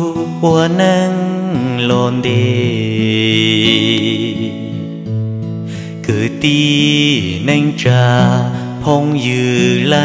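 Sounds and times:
sad ballad melody: 0:00.0 - 0:10.0.

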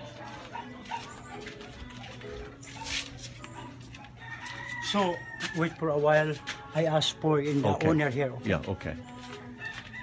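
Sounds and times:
dog barking: 0:00.4 - 0:01.6.

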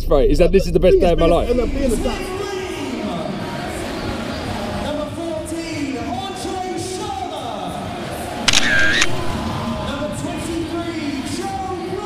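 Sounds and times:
stadium noise: 0:01.4 - 0:12.0
camera shutter click and whir: 0:08.5 - 0:09.4.

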